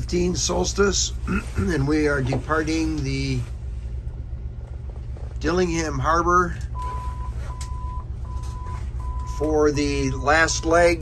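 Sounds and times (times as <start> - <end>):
boat engine rumbling: 0.0 - 11.0.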